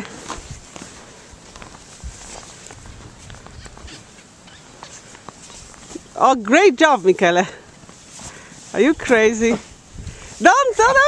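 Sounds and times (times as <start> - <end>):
boots crunching in snow: 0.0 - 11.0
snow shovel scraping snow: 6.9 - 11.0.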